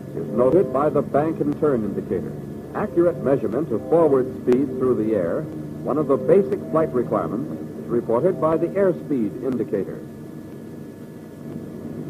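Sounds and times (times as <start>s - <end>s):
aircraft engines droning: 0.0s - 12.0s
film soundtrack hiss: 0.0s - 12.0s.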